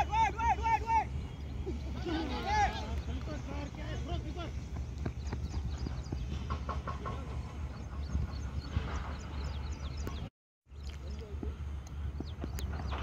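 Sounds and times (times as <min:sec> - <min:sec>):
steady low rumble: 0:01.0 - 0:13.0.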